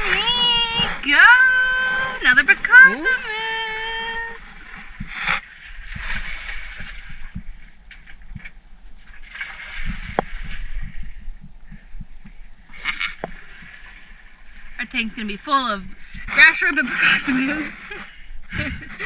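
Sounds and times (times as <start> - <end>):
steady low rumble: 0.0 - 16.9.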